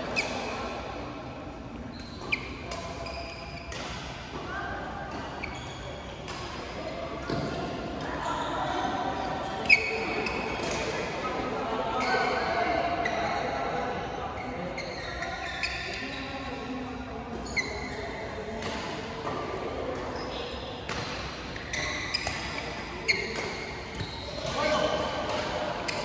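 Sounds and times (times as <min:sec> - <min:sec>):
shoe squeaks on court: 0:01.9 - 0:03.7, 0:05.4 - 0:06.4, 0:09.4 - 0:10.6, 0:14.5 - 0:16.5, 0:17.4 - 0:19.0, 0:21.6 - 0:26.0
players chattering: 0:04.3 - 0:26.0.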